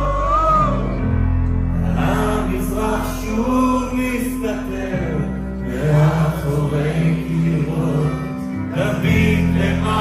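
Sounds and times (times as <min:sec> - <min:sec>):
keyboards: 0:00.0 - 0:10.0
man singing: 0:00.0 - 0:10.0.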